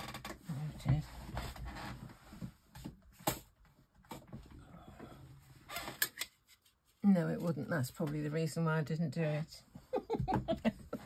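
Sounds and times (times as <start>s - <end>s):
rustling of craft supplies: 0.4s - 4.6s.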